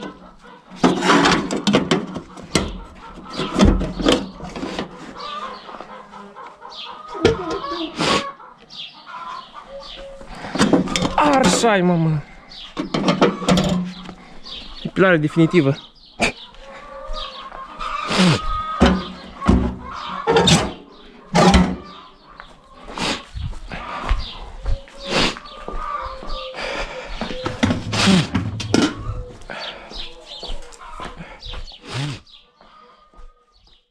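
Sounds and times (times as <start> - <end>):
low animal call: 17.8 - 22.2, 22.9 - 32.4.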